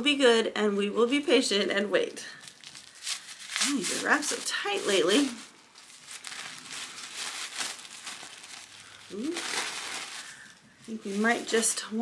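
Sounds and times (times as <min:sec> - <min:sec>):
plastic wrapping crinkling: 0:02.3 - 0:12.0.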